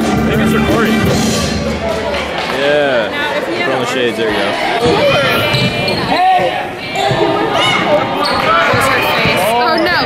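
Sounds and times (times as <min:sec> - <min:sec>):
people shouting: 0:04.8 - 0:09.8.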